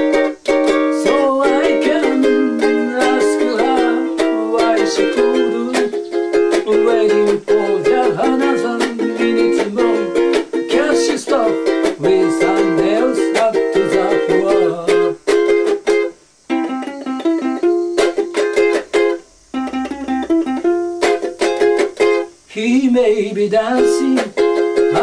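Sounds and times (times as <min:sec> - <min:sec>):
ukulele strumming: 0:00.0 - 0:25.0.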